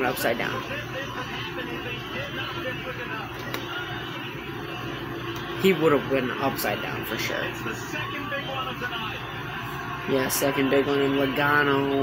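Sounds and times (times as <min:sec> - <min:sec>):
faint commentary on television: 0:00.0 - 0:12.0.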